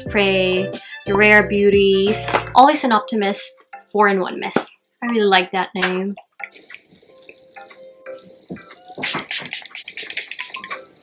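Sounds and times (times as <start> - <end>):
soft music with plucked notes: 6.4 - 9.0
mist bottle spraying: 9.0 - 10.7.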